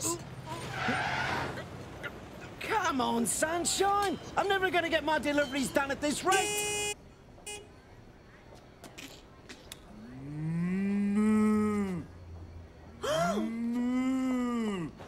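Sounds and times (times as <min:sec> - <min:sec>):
man mooing like a cow: 0:10.1 - 0:12.1.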